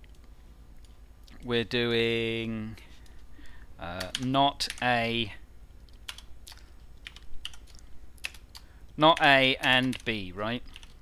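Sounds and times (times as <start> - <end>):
computer keyboard keystrokes: 4.0 - 4.9, 6.0 - 11.0.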